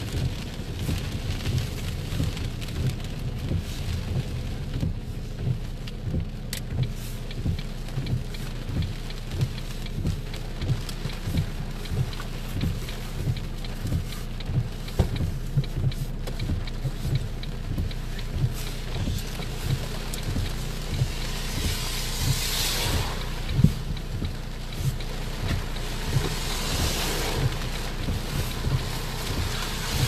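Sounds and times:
rain and tyres on wet road: 0:00.0 - 0:30.0
raindrops thudding on windscreen: 0:00.0 - 0:30.0.

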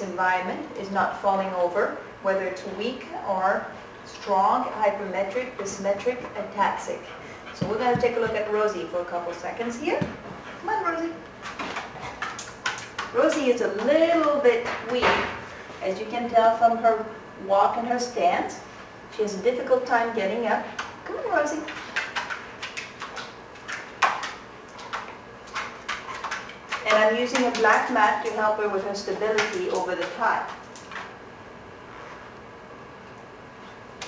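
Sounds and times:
footsteps on tiled floor: 0:07.6 - 0:08.6
dog's claws clicking on tile: 0:11.5 - 0:13.5, 0:21.6 - 0:28.4.

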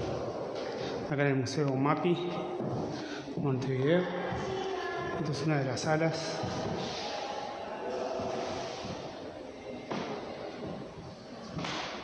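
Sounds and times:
indoor hall background noise: 0:00.0 - 0:12.0.

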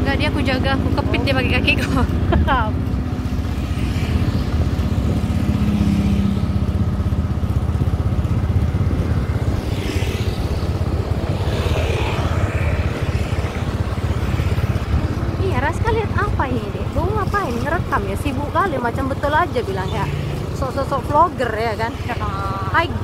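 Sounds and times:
small motorcycle engine running: 0:00.0 - 0:23.0
wind rumbling on microphone: 0:00.0 - 0:23.0.

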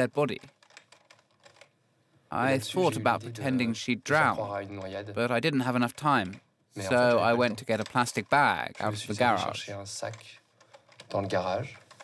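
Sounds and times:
person's voice: 0:02.3 - 0:10.4.

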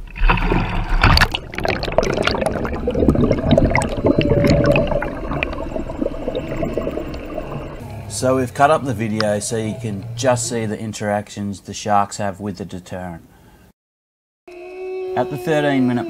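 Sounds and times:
object splashing into water: 0:00.0 - 0:07.8
rushing water underwater: 0:00.0 - 0:09.3
underwater bubbling: 0:00.0 - 0:10.2.

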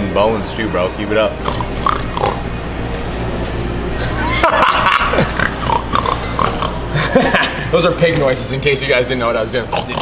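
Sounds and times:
man imitating pig snorts: 0:01.4 - 0:02.5, 0:05.2 - 0:06.9.

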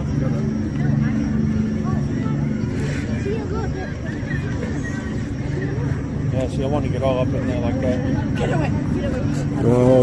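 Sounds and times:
low engine drone: 0:00.0 - 0:10.0
people's voices: 0:00.0 - 0:10.0.

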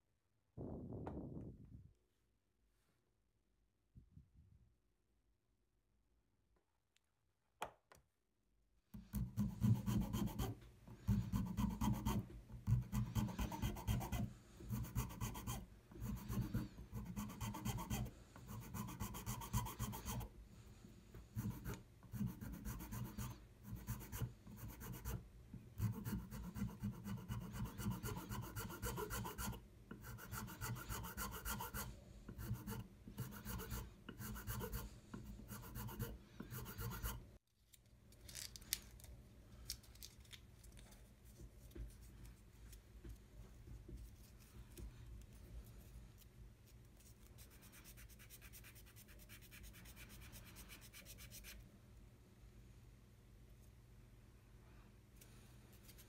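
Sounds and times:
needle file rasping on wood: 0:09.2 - 0:20.3, 0:25.8 - 0:37.2.

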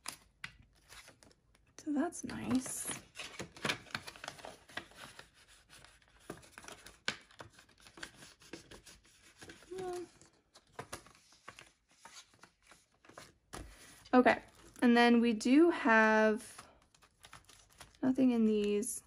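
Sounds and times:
plastic sleeves crinkling: 0:09.3 - 0:14.8, 0:16.4 - 0:19.0
paper banknotes rustling: 0:16.5 - 0:18.8.

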